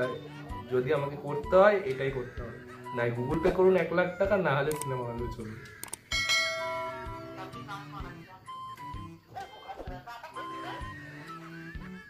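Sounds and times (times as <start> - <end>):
lower bell notes: 6.1 - 7.5
bell ringing: 6.1 - 7.6.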